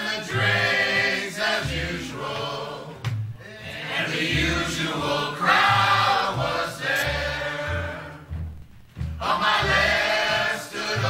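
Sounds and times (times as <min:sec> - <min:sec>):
men singing together: 0:00.0 - 0:08.3, 0:09.2 - 0:11.0
low bass notes: 0:05.6 - 0:10.1.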